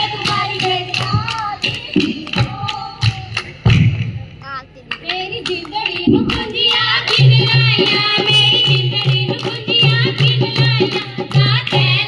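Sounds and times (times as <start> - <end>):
women singing and calling: 0.0 - 3.6, 4.8 - 12.0
sharp hand claps: 0.1 - 3.9, 4.9 - 12.0.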